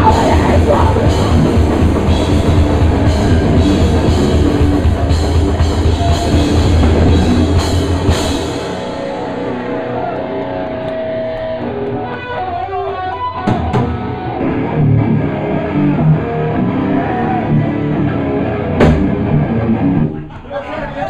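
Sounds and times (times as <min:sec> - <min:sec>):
distorted electric guitars: 0:00.0 - 0:20.2
drums: 0:00.0 - 0:21.0.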